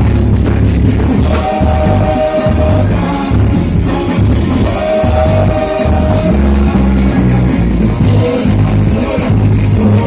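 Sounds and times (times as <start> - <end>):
bass guitar line: 0.0 - 10.0
drums: 0.0 - 10.0
live band playing loud music: 0.0 - 10.0.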